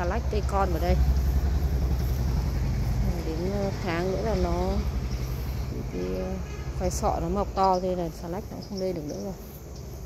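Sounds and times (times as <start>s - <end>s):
loud low rumble: 0.0s - 8.5s.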